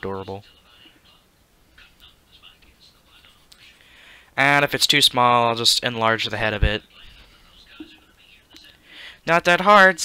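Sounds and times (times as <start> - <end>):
man murmuring faintly: 6.8 - 8.8.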